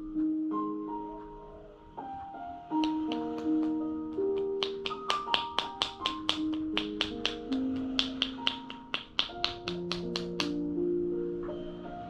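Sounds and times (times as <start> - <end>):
soft piano spa music: 0.0 - 12.0
hands striking body in claps: 2.8 - 10.7.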